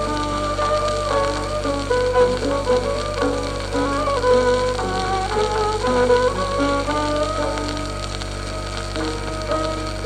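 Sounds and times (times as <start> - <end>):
piano: 0.0 - 10.0
record crackle and hiss: 0.0 - 10.0
violin: 0.0 - 10.0.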